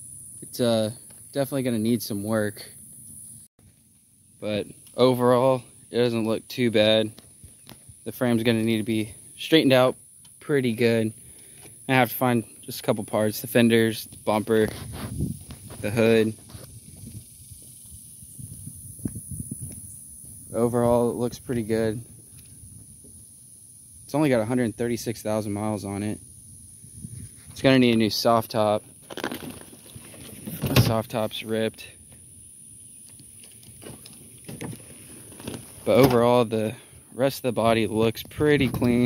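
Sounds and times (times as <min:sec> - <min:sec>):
outdoor background rumble: 0:00.0 - 0:39.0
steady high hiss: 0:00.0 - 0:39.0.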